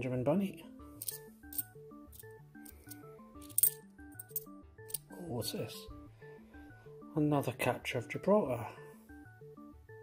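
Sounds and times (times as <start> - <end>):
background music: 0.0 - 10.0
coins clinking: 1.0 - 5.1.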